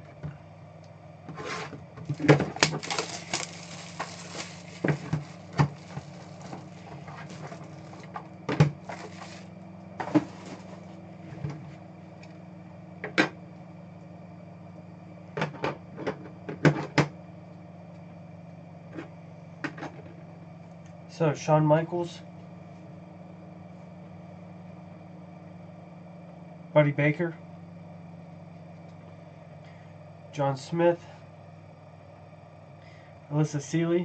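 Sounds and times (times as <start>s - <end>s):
steady low hum: 0.0s - 34.0s
packaging rustling: 2.0s - 8.2s, 8.8s - 9.5s.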